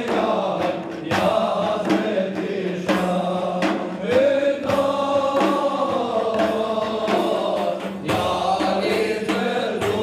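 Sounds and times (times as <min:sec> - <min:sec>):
frame drums beating: 0:00.0 - 0:10.0
group chanting a hymn: 0:00.0 - 0:10.0.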